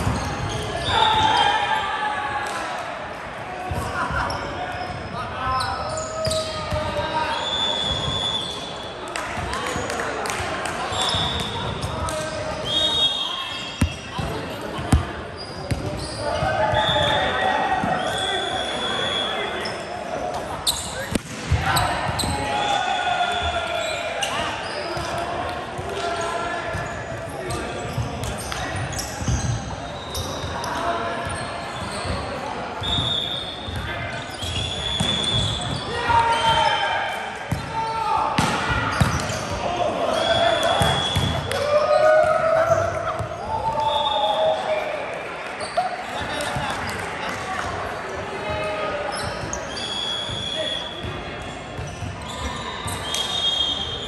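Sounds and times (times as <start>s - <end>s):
sneaker squeaks on court: 0.0s - 1.2s, 13.4s - 17.1s, 19.5s - 22.4s, 26.7s - 36.6s, 38.4s - 42.0s, 49.1s - 54.0s
volleyball being struck: 38.4s - 39.3s.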